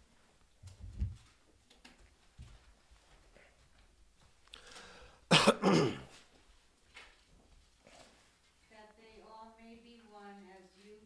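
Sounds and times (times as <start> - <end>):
faint breath in: 4.5 - 5.3
man coughing: 5.3 - 6.2.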